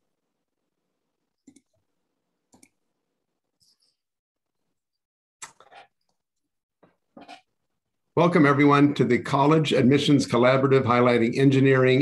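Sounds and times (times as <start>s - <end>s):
computer mouse clicks: 1.4s - 1.8s, 2.5s - 2.8s.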